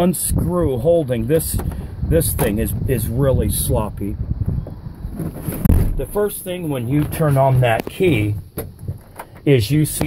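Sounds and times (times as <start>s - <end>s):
wind on microphone: 0.1s - 6.2s
thump: 5.2s - 6.0s.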